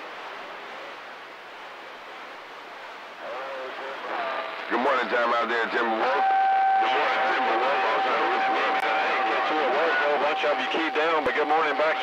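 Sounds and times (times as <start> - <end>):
steady whistle tone: 6.0 - 11.2.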